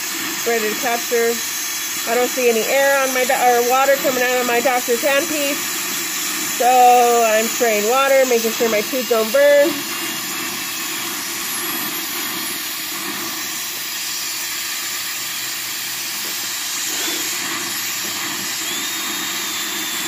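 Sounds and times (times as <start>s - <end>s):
dental drill whine: 0.0s - 20.0s
dental suction hissing: 0.0s - 20.0s.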